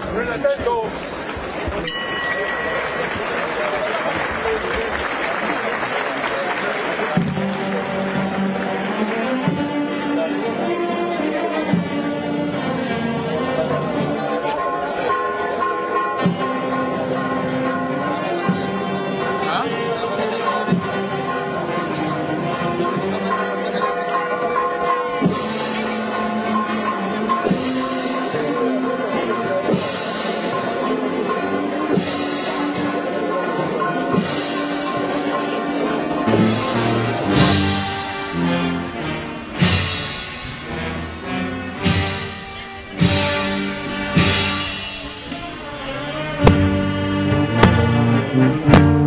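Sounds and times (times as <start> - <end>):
brass band playing a march: 2.7 - 49.0
drum and cymbal strikes: 25.0 - 38.5, 39.6 - 45.5.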